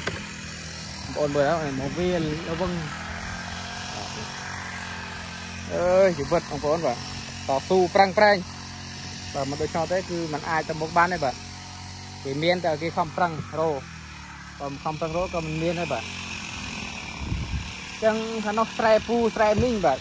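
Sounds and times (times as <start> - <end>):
small engine running steadily: 0.0 - 20.0
man talking: 1.0 - 3.0, 5.6 - 8.4, 9.3 - 11.4, 18.0 - 20.0.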